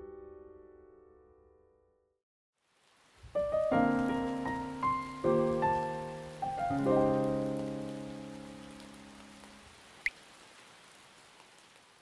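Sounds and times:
piano chord ringing: 0:00.0 - 0:02.0
steady rain: 0:02.6 - 0:12.0.

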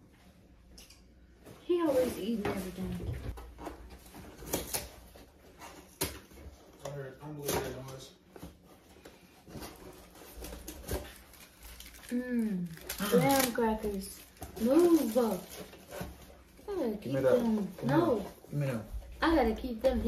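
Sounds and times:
cardboard box and wrapper crinkling: 0:01.7 - 0:20.0.

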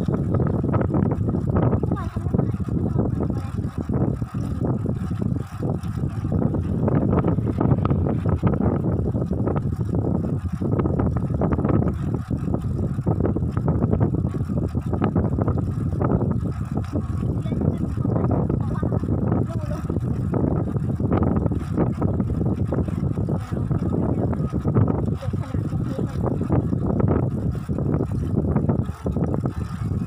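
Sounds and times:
bicycle rolling noise: 0:00.0 - 0:30.0
wind buffeting microphone: 0:00.0 - 0:30.0.

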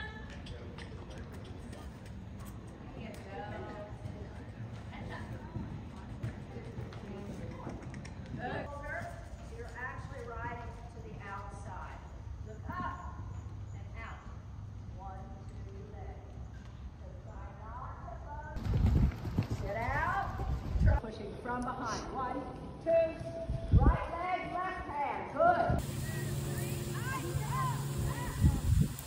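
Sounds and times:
horse hoofbeats on sand: 0:18.6 - 0:21.0
people talking: 0:25.7 - 0:28.8.

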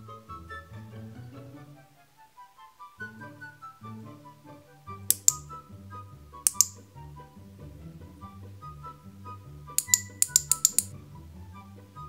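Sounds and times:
background music with bass line: 0:03.0 - 0:12.0
plastic toy parts snapping together: 0:05.1 - 0:05.4, 0:06.5 - 0:06.8, 0:09.8 - 0:10.9.

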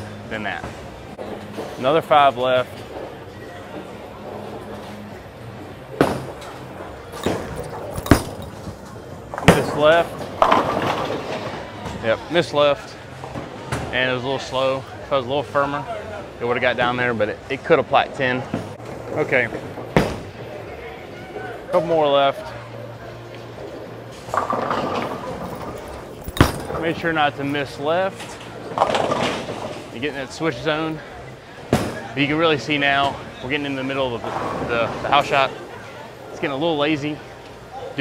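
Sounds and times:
background murmur: 0:00.0 - 0:38.0
bowling balls and pins clattering: 0:05.8 - 0:12.0, 0:23.6 - 0:27.1, 0:28.2 - 0:30.0, 0:34.2 - 0:35.2.

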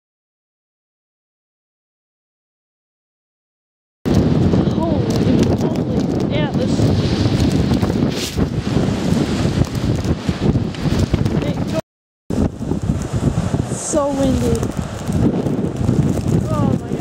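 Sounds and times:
strong wind buffeting microphone: 0:04.1 - 0:17.0.

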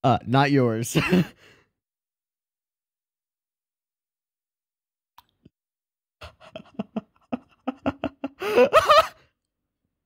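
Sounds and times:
man's breathy laugh: 0:06.2 - 0:09.4.

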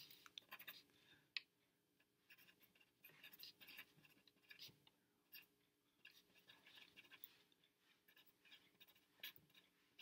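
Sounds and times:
pencil scratching on paper: 0:00.0 - 0:00.9, 0:02.2 - 0:10.0.

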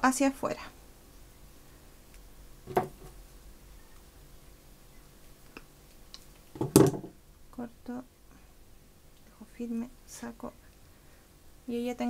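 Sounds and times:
metal clatter on table: 0:02.7 - 0:03.2.

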